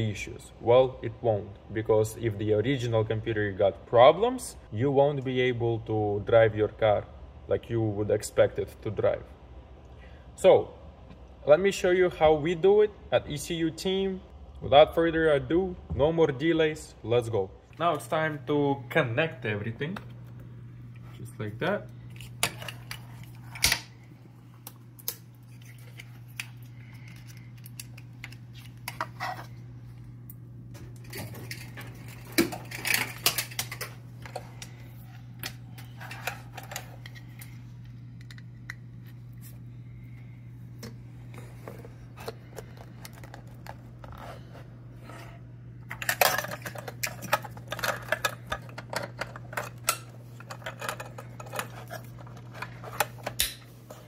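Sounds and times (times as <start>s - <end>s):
steady low hum: 0.0s - 54.0s
plastic connectors clicking and rattling: 45.9s - 53.6s.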